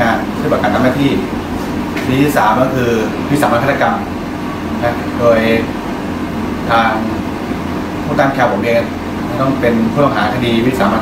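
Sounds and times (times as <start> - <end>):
low room hum: 0.0 - 11.0
man speaking: 2.0 - 4.2, 4.8 - 5.8, 8.1 - 11.0.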